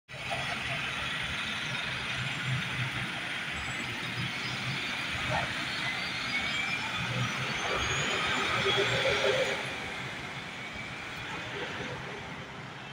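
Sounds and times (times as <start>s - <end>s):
bus engine idling: 0.2s - 12.9s.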